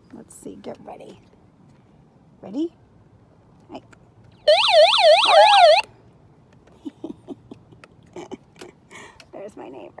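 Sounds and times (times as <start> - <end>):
warbling siren alarm: 4.5 - 5.8.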